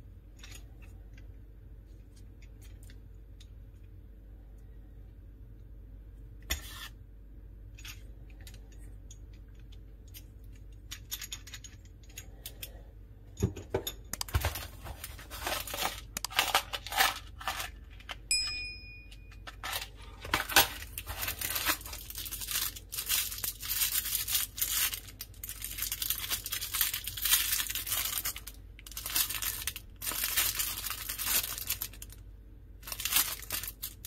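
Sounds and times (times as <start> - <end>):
plastic wrapping crinkling: 14.2 - 18.2, 19.4 - 32.2, 32.8 - 34.0
short ringing ding: 18.3 - 19.4.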